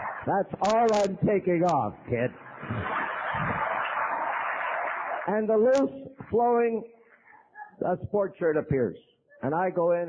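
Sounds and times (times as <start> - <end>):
audience laughing and clapping: 0.0 - 0.9, 2.2 - 6.3.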